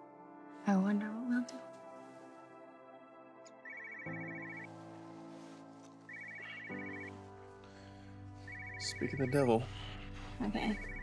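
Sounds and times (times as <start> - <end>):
soft background music: 0.0 - 11.0
phone trilling ringtone: 3.6 - 4.7.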